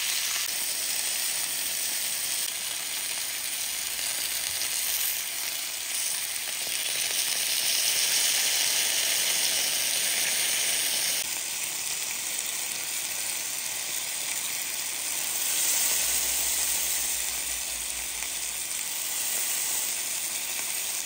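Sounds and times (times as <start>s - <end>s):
chicken sizzling on a grill pan: 0.0s - 21.0s.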